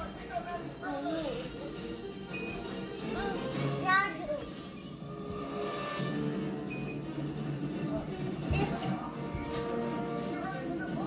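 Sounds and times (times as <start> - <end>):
television music and voices: 0.0 - 11.0
high electronic beeps: 6.7 - 7.1.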